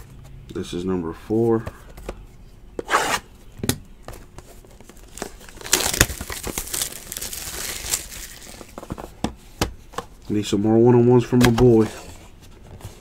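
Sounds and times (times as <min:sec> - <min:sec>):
plastic wrapping crinkling: 0:04.8 - 0:08.9.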